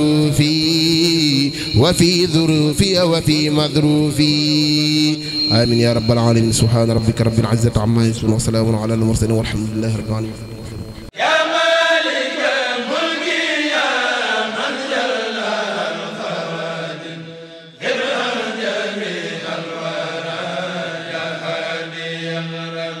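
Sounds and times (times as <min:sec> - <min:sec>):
outro jingle with chanted vocals: 0:00.0 - 0:23.0.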